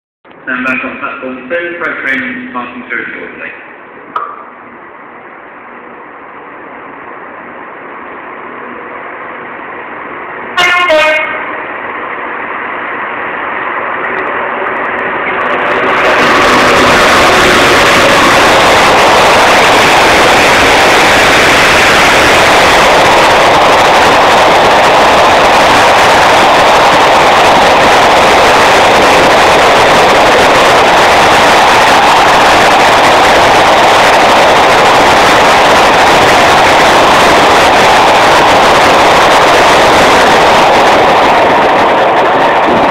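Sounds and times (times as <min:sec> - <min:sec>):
diesel locomotive approaching: 0:00.3 - 0:42.9
train rushing past: 0:00.4 - 0:42.9
train horn blast: 0:10.5 - 0:11.6.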